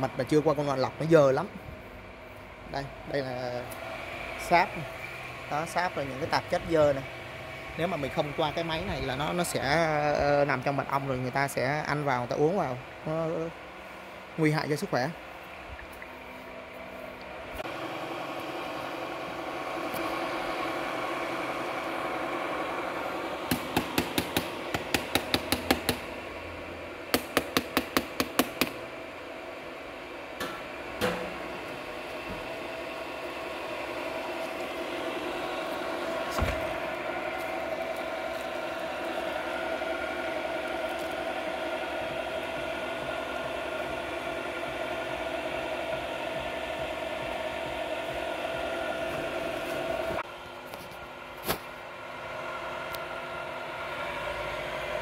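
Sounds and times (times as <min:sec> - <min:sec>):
electric pump humming: 0:00.0 - 0:55.0
rapid sharp knocks: 0:23.5 - 0:26.0.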